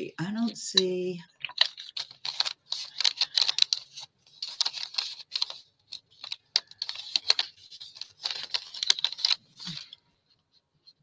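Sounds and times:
paper crinkling and clicking: 1.4s - 10.0s.

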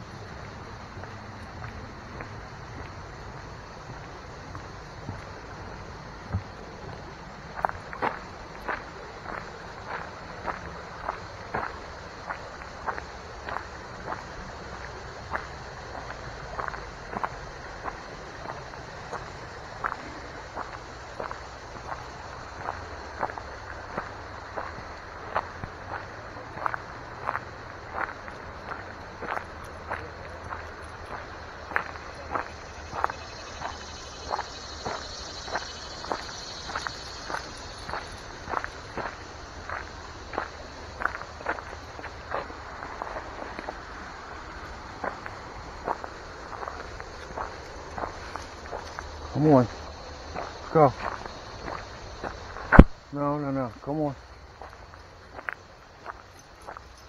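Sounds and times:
footsteps on gravel: 6.2s - 53.0s, 53.6s - 57.0s.

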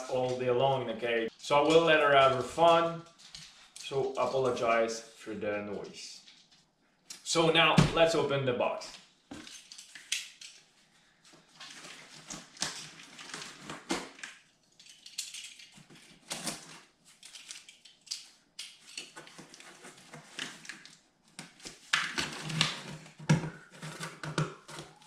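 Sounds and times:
blade scraping cardboard: 22.2s - 25.0s.

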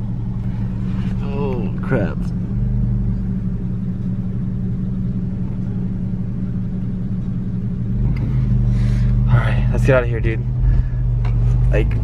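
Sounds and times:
car engine humming: 0.0s - 12.0s
road rumble: 0.0s - 12.0s.

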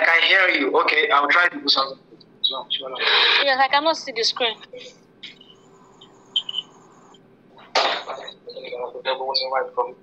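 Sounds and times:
person talking over video call: 0.0s - 4.9s, 7.8s - 10.0s.

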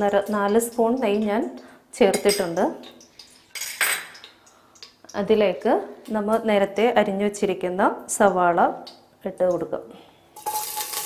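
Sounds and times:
metal spoon scraping glass bowl: 10.4s - 11.0s.

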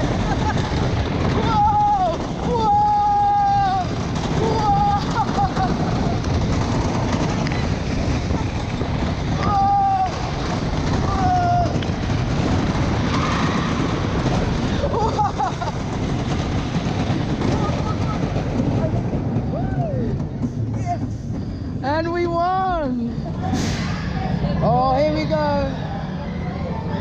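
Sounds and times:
roller coaster rumbling on track: 0.0s - 27.0s.

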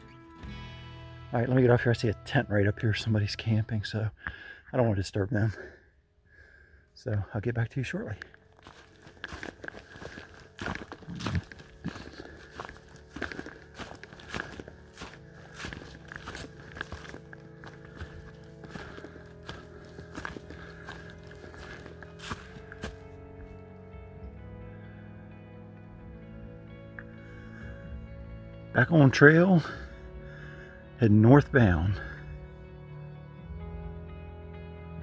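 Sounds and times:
soft background music: 0.0s - 35.0s
footsteps through dry leaves: 8.5s - 23.2s.

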